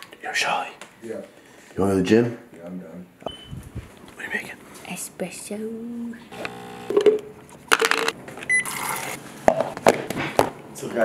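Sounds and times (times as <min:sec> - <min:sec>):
espresso machine pump buzzing: 0:06.3 - 0:07.4.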